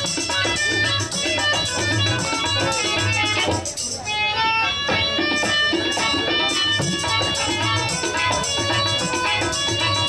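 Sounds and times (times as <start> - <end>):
plucked metallic string melody: 0.0 - 10.0.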